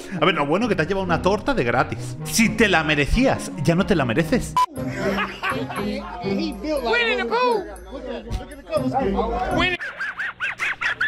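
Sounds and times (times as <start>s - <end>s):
music: 0.0s - 9.8s.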